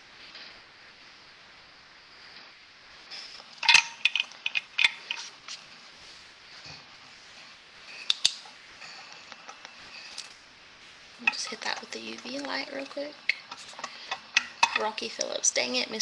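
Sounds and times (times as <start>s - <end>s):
small hard objects clicking: 3.4s - 5.6s.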